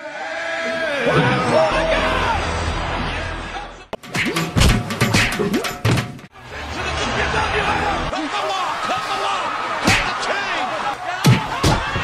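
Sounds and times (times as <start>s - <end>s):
background music: 1.1s - 8.1s.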